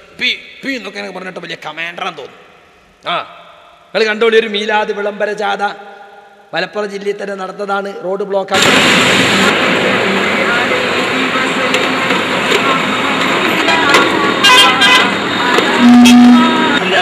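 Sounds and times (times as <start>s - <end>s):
street noise: 8.5s - 17.0s
voices: 9.5s - 17.0s
low horn tone: 15.8s - 16.8s.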